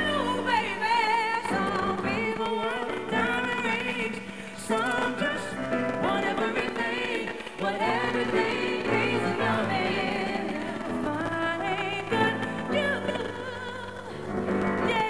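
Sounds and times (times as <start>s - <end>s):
piano accompaniment: 0.0s - 15.0s
woman singing gospel-soul: 0.0s - 15.0s.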